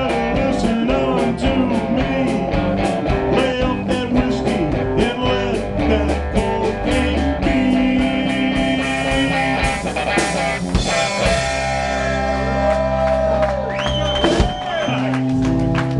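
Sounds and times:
drum beat: 0.0s - 12.8s, 13.9s - 15.9s
blues-rock band playing: 0.0s - 15.9s
electric guitar: 0.0s - 15.9s.

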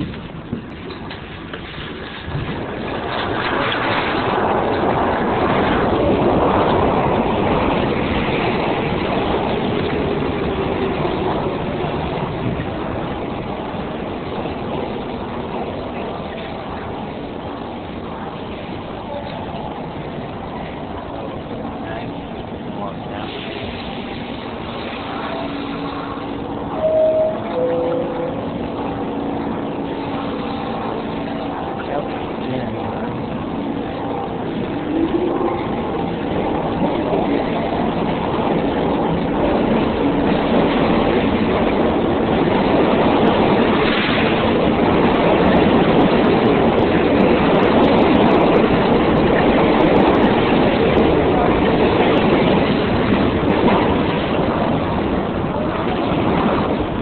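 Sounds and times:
subway train rumbling: 0.0s - 57.0s
brief tones: 26.7s - 28.9s.

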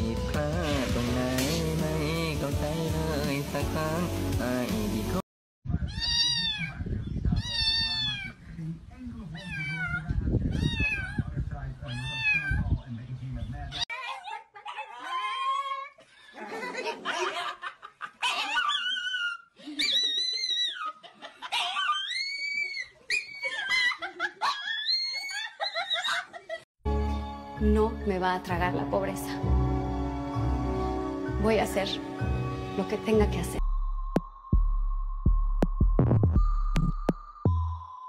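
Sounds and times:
wailing animal cries: 11.9s - 12.6s, 13.9s - 16.0s, 18.2s - 26.2s
small dog howling: 13.9s - 15.9s.

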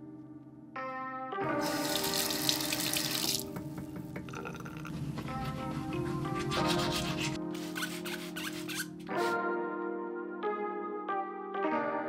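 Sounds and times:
tap running water into sink: 1.5s - 4.9s.

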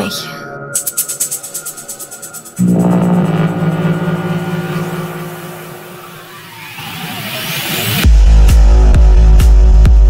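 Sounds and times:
low synth drone: 0.6s - 9.4s
noise riser sweeping upward: 0.8s - 8.1s.

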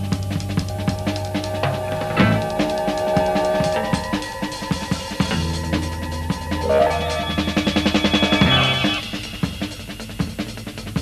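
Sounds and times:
band playing low: 0.0s - 9.5s
drum kit playing: 0.0s - 11.0s.

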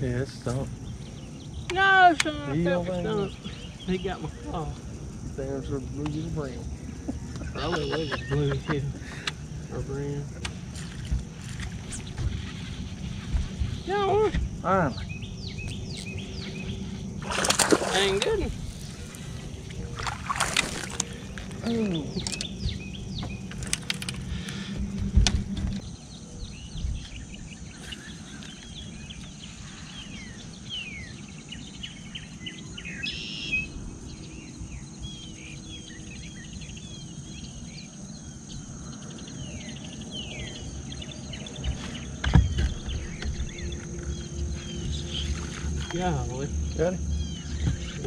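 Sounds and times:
birds chirping: 0.0s - 48.0s
low hum: 6.4s - 33.0s, 33.6s - 48.0s.

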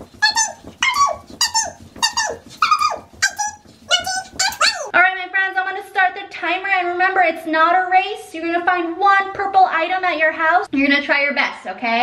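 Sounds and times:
dog whining: 0.3s - 4.9s
dog yelping: 0.3s - 4.9s.

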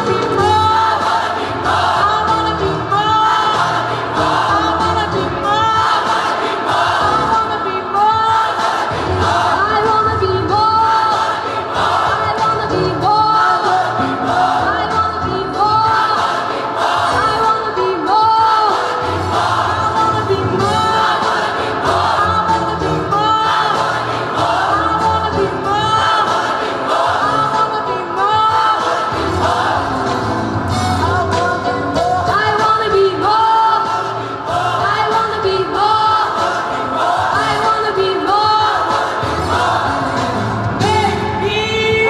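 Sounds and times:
woman singing into a microphone: 0.0s - 1.0s, 2.0s - 3.8s, 7.1s - 8.6s, 9.5s - 11.2s, 12.0s - 16.2s, 17.1s - 19.0s, 19.6s - 21.3s, 22.1s - 23.7s, 24.7s - 26.3s, 27.2s - 29.1s, 31.0s - 34.2s, 34.8s - 36.4s, 37.4s - 38.9s, 40.8s - 42.0s
gospel choir singing: 0.0s - 42.0s.

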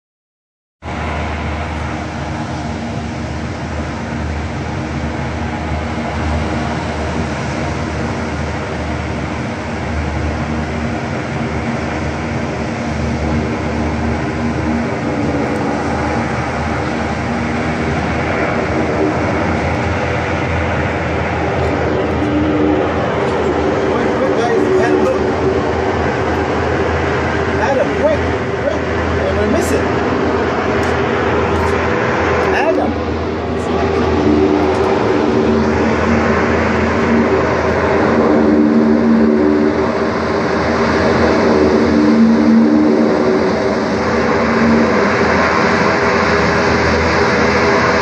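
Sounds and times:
hovercraft engine drone: 0.8s - 48.0s.

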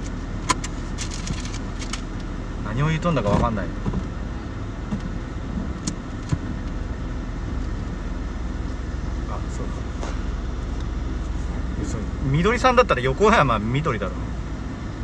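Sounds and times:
car cabin hum: 0.0s - 15.0s.

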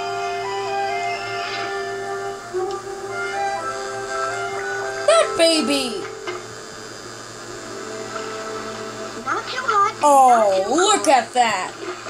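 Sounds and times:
soft cartoon background music: 0.0s - 6.6s, 7.5s - 12.0s.

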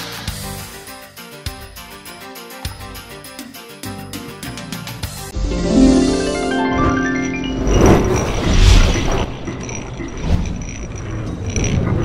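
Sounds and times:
whoosh: 6.8s - 9.5s.

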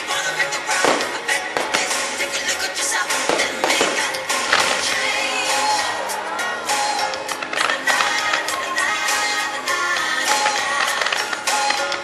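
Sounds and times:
fireworks bursting and crackling: 0.0s - 6.0s, 7.0s - 12.0s
music playing: 0.0s - 12.0s.

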